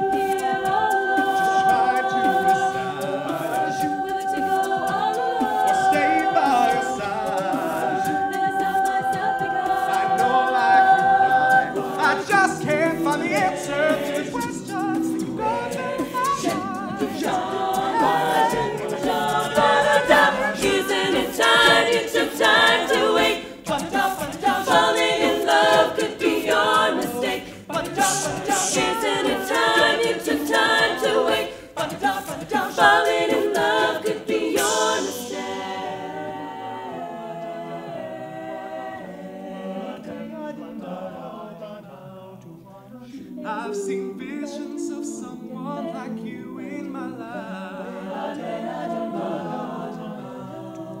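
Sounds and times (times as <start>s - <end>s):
a cappella group singing: 0.0s - 51.0s.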